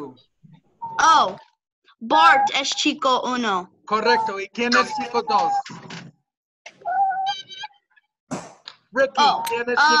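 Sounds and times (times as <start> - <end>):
cat meowing: 6.8 - 7.8.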